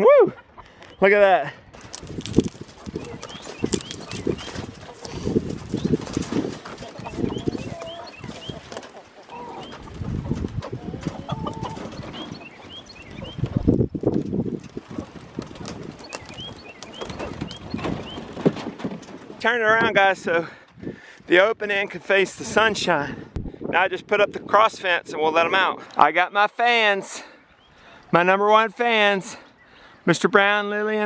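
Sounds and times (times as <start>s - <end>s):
chickens clucking: 2.4s - 20.0s, 25.4s - 28.1s
chicken tractor knocking and rattling: 2.8s - 20.0s.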